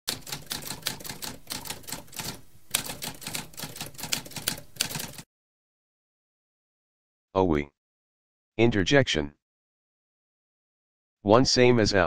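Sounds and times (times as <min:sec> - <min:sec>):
typewriter keys clacking: 0:00.1 - 0:05.2.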